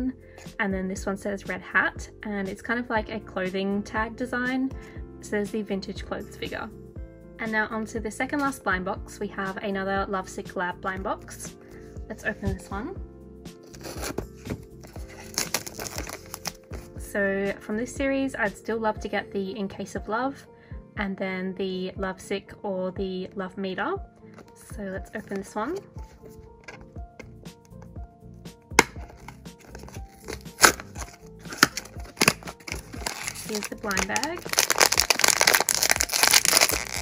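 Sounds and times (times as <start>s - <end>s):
soft background music: 0.0s - 37.0s
cardboard tapping and rubbing: 13.6s - 16.9s, 24.3s - 27.8s, 28.8s - 37.0s
plastic film crinkling: 13.6s - 16.9s, 28.8s - 37.0s
scissors snipping plastic wrap: 13.7s - 16.6s, 28.8s - 37.0s
cardboard flaps snapping: 28.8s - 29.3s.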